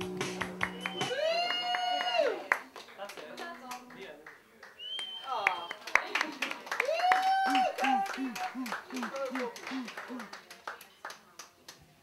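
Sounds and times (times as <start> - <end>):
audience clapping: 0.0 - 11.9
voices: 7.4 - 11.5.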